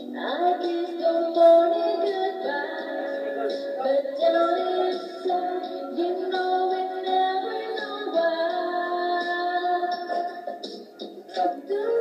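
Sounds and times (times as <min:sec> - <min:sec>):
woman singing through small speakers: 0:00.0 - 0:10.7, 0:11.3 - 0:12.0.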